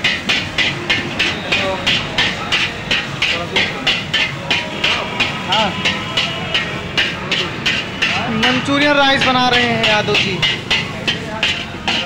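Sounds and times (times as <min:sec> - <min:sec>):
metal spatula scraping a wok: 0:00.0 - 0:12.0.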